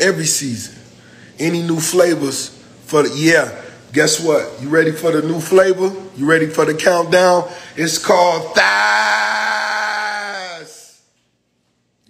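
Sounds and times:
man yelling: 7.8 - 11.1.

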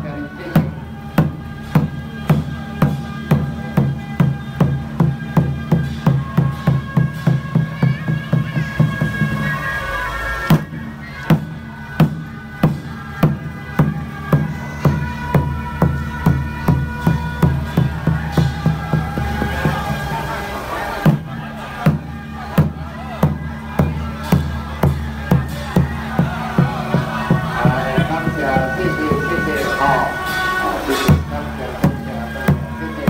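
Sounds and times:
percussion beating even rhythm: 0.0 - 9.5, 10.5 - 33.0
reedy wind instrument tones: 0.0 - 33.0.

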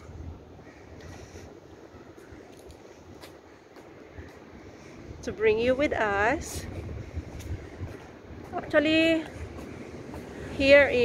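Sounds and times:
road traffic rumble: 0.0 - 11.0
wind on microphone: 0.0 - 11.0.

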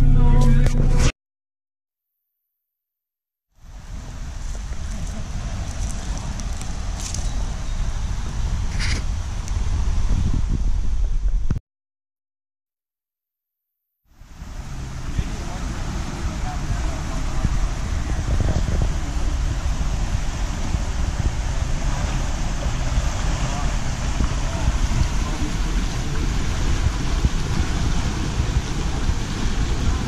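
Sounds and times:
wind buffeting microphone: 3.6 - 11.6, 14.2 - 30.0.

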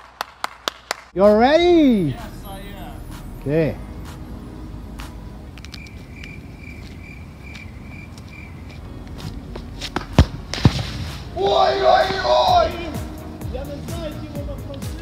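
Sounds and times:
football being kicked: 10.0 - 11.1
person shouting: 11.4 - 13.1.

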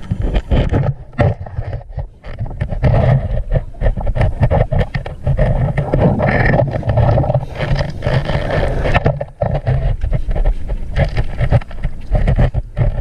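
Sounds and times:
crackling underwater bubbles: 0.0 - 13.0
low underwater rumble: 0.0 - 13.0.

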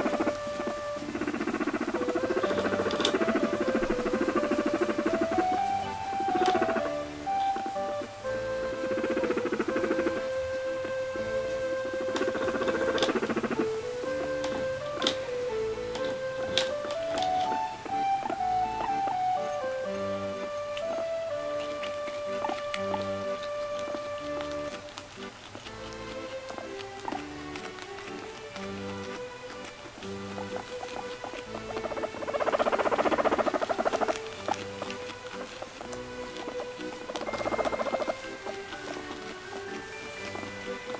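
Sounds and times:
background music: 0.0 - 40.9
guinea pig pulsing purr: 0.0 - 40.9.

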